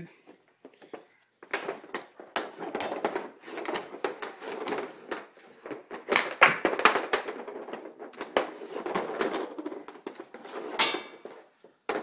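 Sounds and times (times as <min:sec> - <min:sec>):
hockey stick hitting pucks: 0:00.9 - 0:12.0.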